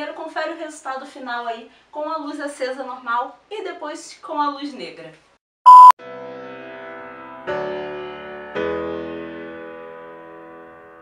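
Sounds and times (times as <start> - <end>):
high beep ending in click: 5.7 - 6.0.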